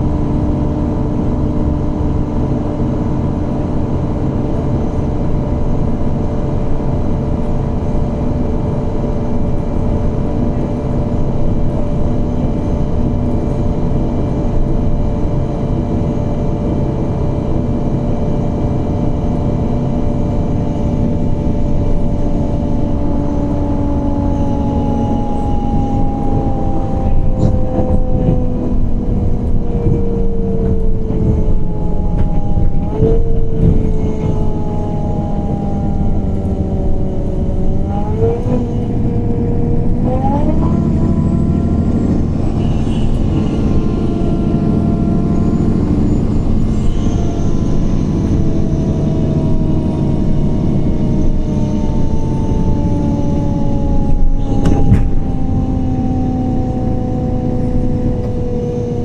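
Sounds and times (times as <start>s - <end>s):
bus engine whining: 0.0s - 59.0s
knocks from bus body: 54.5s - 55.3s.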